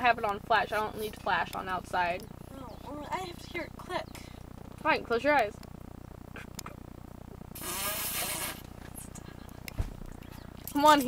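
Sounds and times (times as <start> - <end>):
low steady hum: 0.0 - 11.0
stifled breathy giggle: 6.3 - 6.8, 8.8 - 9.7
thump: 9.8 - 10.1.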